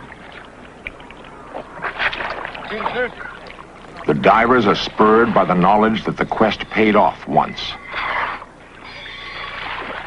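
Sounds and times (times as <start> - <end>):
water splashing and churning: 0.0 - 10.0.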